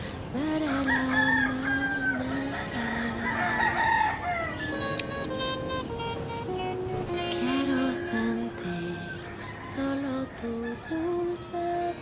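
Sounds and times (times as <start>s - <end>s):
song with held sung notes: 0.0s - 12.0s
rooster crowing: 0.6s - 4.8s, 7.9s - 12.0s
plucked guitar notes: 1.5s - 10.1s.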